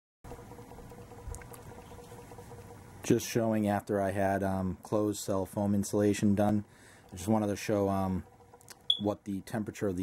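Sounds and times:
gas boiler humming: 0.3 - 10.0.

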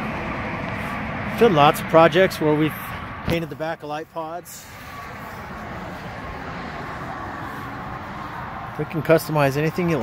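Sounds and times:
vehicle rumble: 0.0 - 10.0.

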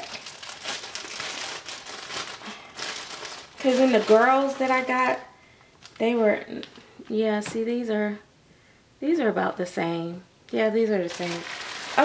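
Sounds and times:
packaging crinkling: 0.0 - 5.1, 5.8 - 6.8, 11.0 - 12.0.

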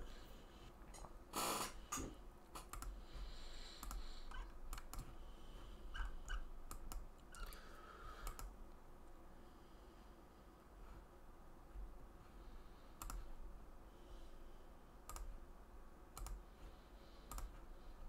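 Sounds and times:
computer mouse and keyboard clicks: 1.0 - 3.0, 3.8 - 5.2, 6.0 - 7.5, 8.2 - 8.5, 13.0 - 13.3, 15.0 - 15.4, 16.2 - 16.4, 17.3 - 17.7.

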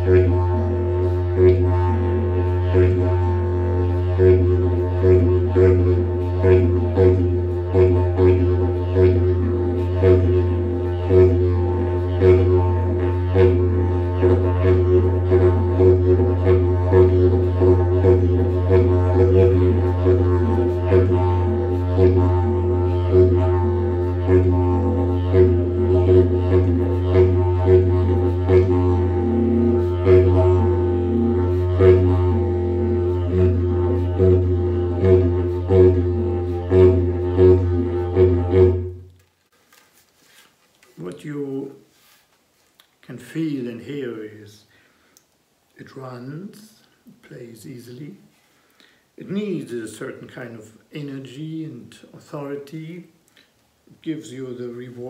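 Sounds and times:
didgeridoo drone: 0.0 - 39.1.

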